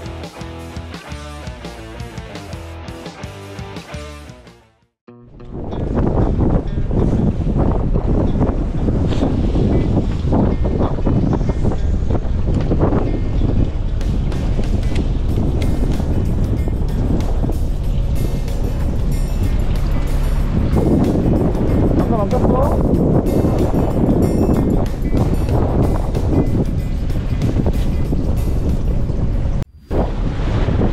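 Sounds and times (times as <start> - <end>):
background music: 0.0 - 29.6
wind buffeting the microphone: 5.4 - 30.9.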